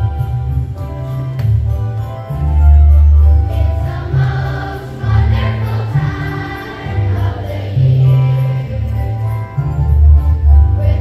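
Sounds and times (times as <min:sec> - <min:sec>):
accompaniment with strong bass: 0:00.0 - 0:11.0
children's choir singing: 0:03.4 - 0:09.9, 0:10.5 - 0:11.0.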